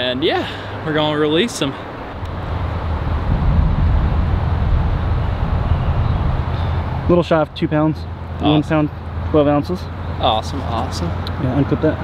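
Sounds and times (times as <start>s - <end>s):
wind buffeting microphone: 1.8s - 7.1s.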